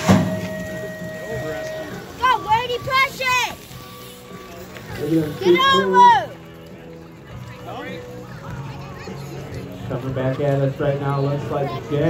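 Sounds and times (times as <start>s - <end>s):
metal gate clank: 0.0s - 1.0s
steady electronic beep: 0.0s - 4.5s.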